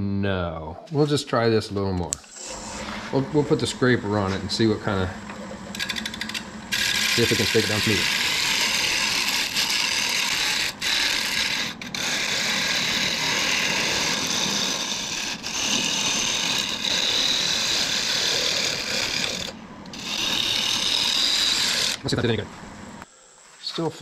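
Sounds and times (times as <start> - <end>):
scraper rasping on lathe wood: 2.3 - 22.1.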